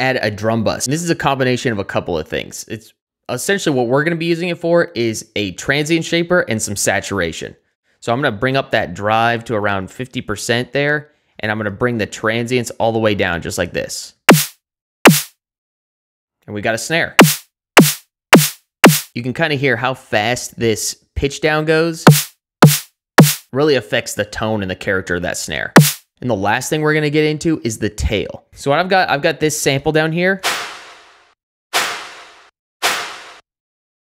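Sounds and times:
synthesized snare drum hits: 0:14.3 - 0:15.3, 0:17.2 - 0:19.1, 0:22.0 - 0:23.5, 0:25.8 - 0:26.0.

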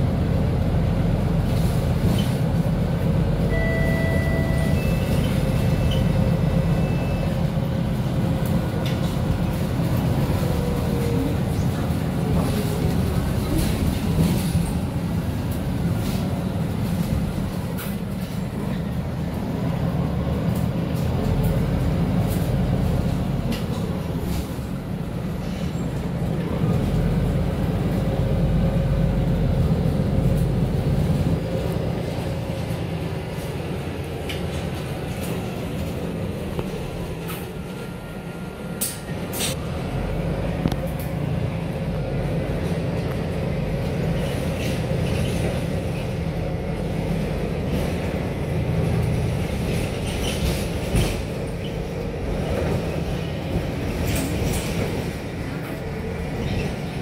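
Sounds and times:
bus engine and road rumble: 0:00.0 - 0:57.0.

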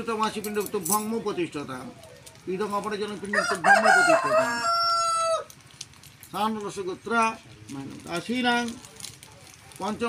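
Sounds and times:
rooster crowing: 0:03.3 - 0:05.6.

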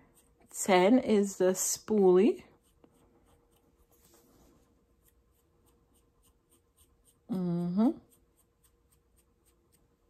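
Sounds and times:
brush scratching eyebrow hairs: 0:00.0 - 0:10.0.

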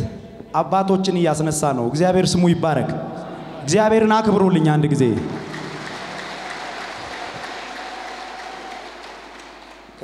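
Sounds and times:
audience applauding: 0:05.2 - 0:10.0.

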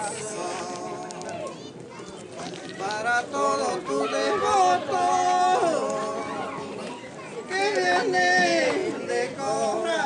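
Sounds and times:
man singing unaccompanied: 0:00.0 - 0:01.3, 0:02.8 - 0:06.8, 0:07.5 - 0:10.0
faint children's voices: 0:00.0 - 0:10.0.

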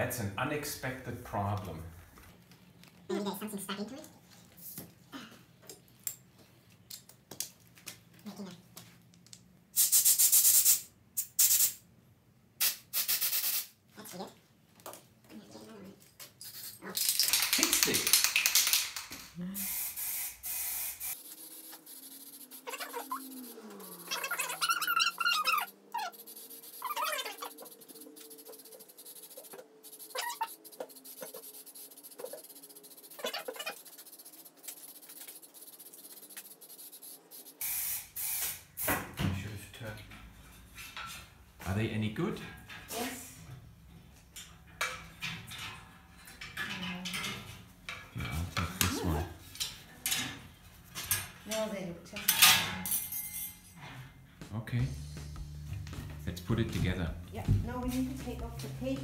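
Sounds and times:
spray can hissing: 0:09.8 - 0:11.8, 0:12.6 - 0:13.8, 0:19.6 - 0:39.0.

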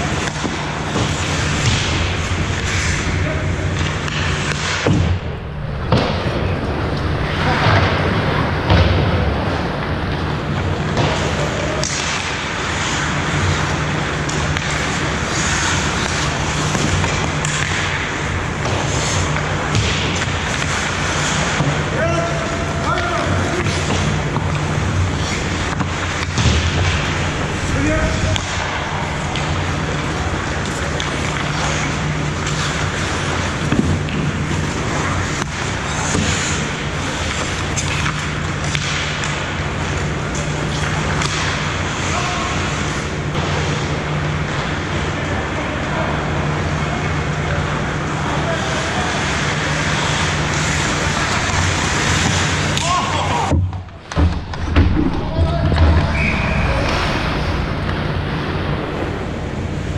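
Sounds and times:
hockey sticks and puck knocking: 0:00.0 - 0:05.2, 0:05.8 - 0:45.0, 0:48.6 - 0:57.0
skates on ice: 0:00.0 - 0:05.2, 0:05.8 - 0:59.9
steady low hum: 0:00.0 - 0:59.9
distant players shouting: 0:52.5 - 0:53.8.

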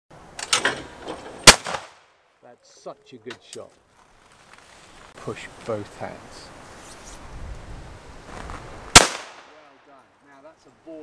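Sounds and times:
shotgun shot with echo: 0:01.4 - 0:02.0, 0:08.9 - 0:09.8.

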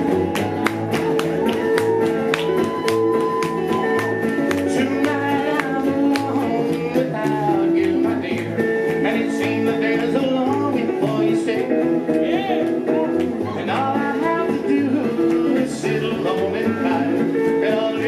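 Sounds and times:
electric guitar lead line: 0:00.0 - 0:18.0
strummed acoustic guitar: 0:00.0 - 0:18.0
upright bass: 0:00.0 - 0:18.0.

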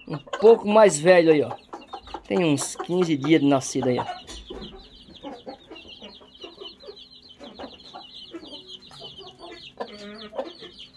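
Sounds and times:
chicks peeping: 0:00.0 - 0:10.9
hen clucking: 0:00.0 - 0:10.9.

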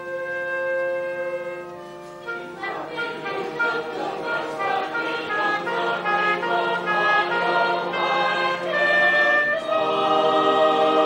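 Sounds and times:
choir singing: 0:02.2 - 0:11.0.

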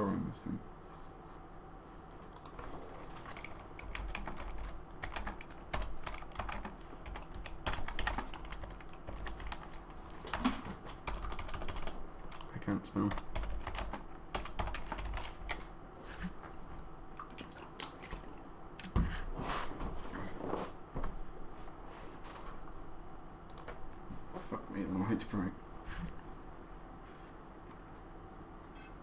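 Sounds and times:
computer keyboard typing: 0:02.3 - 0:15.7, 0:23.5 - 0:23.8.

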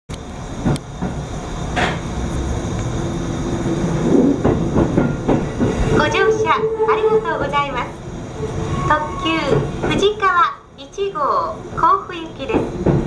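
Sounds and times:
train running rumble: 0:00.1 - 0:13.0
train wheel clacks: 0:00.6 - 0:02.1, 0:04.1 - 0:06.2, 0:09.4 - 0:10.3, 0:12.4 - 0:13.0.

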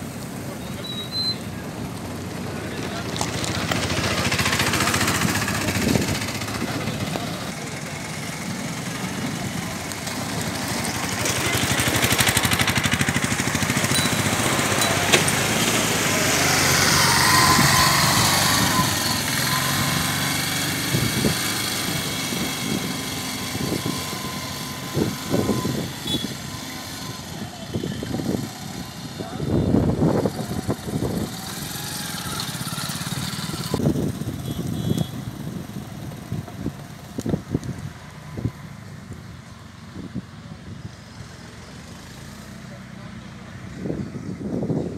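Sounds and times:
people's voices: 0:00.0 - 0:20.1, 0:26.5 - 0:33.8
motorbikes driving past: 0:00.0 - 0:44.9.

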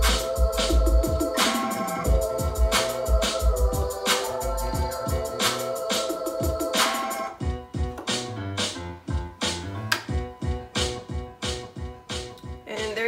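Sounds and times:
beat-driven music track: 0:00.0 - 0:13.0.

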